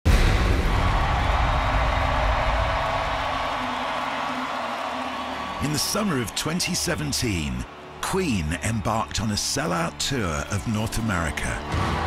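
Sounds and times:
crowd cheering: 0:00.1 - 0:12.0.

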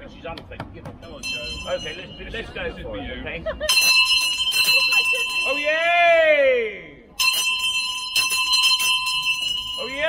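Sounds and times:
handbell ringing: 0:01.2 - 0:02.2, 0:03.7 - 0:05.7, 0:07.2 - 0:10.0.

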